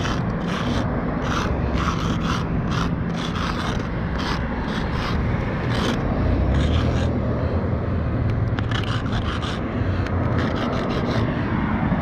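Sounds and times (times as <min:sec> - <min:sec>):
marker scraping on concrete: 0:00.0 - 0:07.6, 0:08.3 - 0:11.6
steady low rumble: 0:00.0 - 0:12.0.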